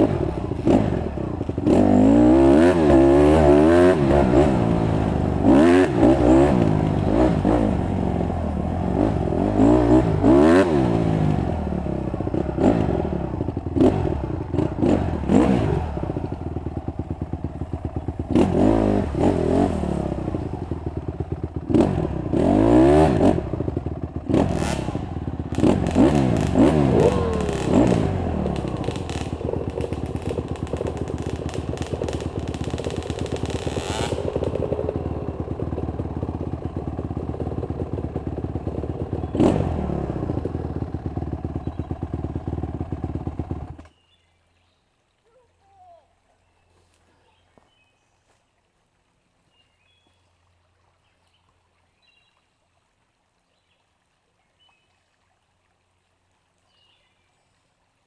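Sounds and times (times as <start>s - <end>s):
dirt bike engine revving: 0.0s - 43.8s.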